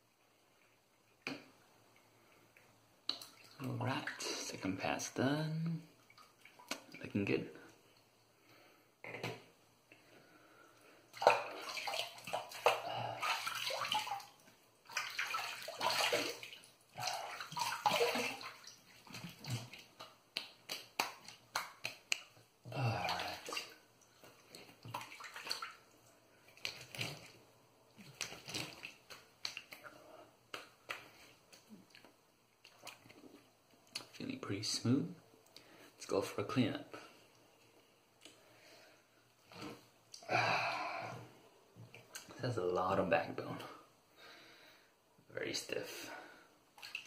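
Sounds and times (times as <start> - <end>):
water splashed onto face: 11.2 - 23.8.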